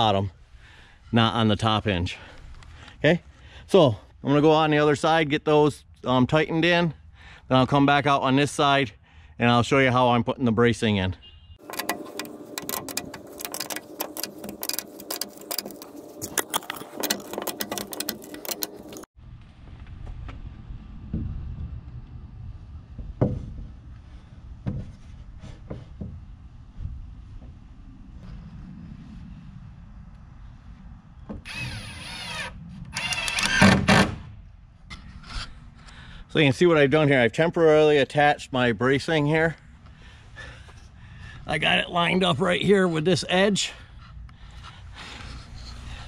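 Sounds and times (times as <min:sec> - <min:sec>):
ratchet wrench clicking: 0:11.6 - 0:19.0
cordless drill driving screws: 0:31.5 - 0:34.1.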